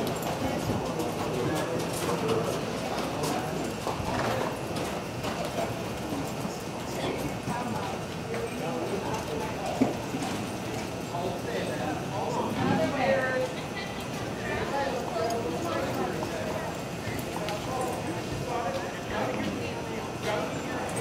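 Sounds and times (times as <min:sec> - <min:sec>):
murmur of voices: 0:00.0 - 0:21.0.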